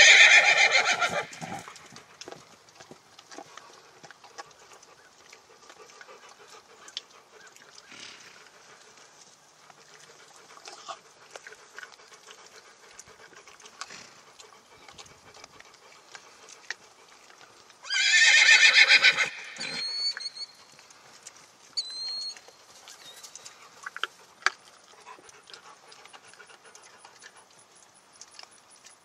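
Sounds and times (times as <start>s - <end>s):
horse whinnying: 0.0s - 1.8s, 17.8s - 20.5s
short high whistles: 19.6s - 20.6s, 21.8s - 22.4s.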